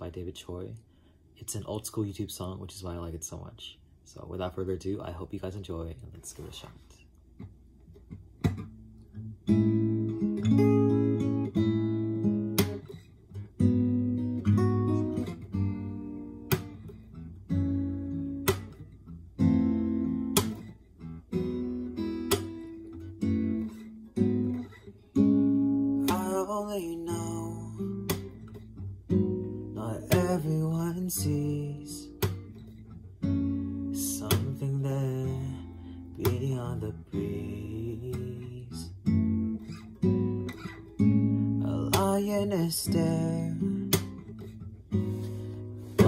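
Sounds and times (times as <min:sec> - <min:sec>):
acoustic guitar strummed chords: 0:08.4 - 0:46.0.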